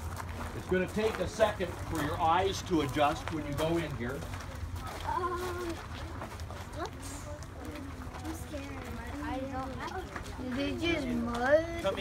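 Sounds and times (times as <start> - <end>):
children's voices: 4.6 - 12.0.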